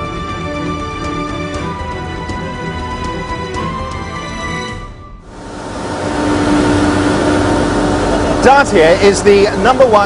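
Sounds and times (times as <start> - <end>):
steady hum: 5.2 - 10.0
steel rolling mill machinery: 5.3 - 10.0.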